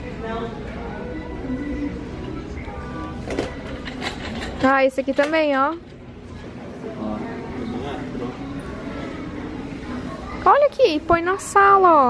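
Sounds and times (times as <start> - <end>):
store hall background hum: 0.0 - 12.0.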